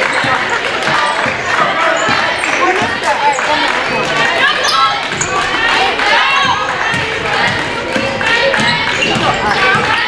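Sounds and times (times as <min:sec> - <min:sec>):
sneaker squeaks: 0:00.0 - 0:03.6, 0:04.4 - 0:05.5, 0:08.4 - 0:10.0
voices in a hall: 0:00.0 - 0:10.0.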